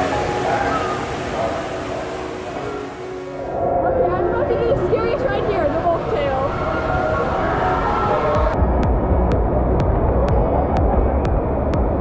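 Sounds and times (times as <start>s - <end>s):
water rushing and splashing: 0.0s - 8.6s.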